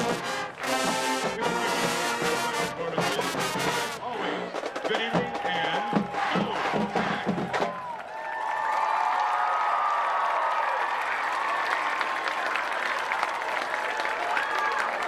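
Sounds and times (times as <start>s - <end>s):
marching band with brass and drums: 0.0s - 8.0s
crowd cheering and applauding: 0.0s - 15.0s.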